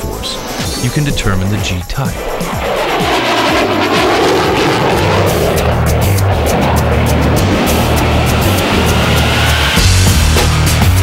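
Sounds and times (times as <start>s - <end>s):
fighter jet flying past: 0.0s - 10.2s
rock music with heavy beat: 2.2s - 11.0s.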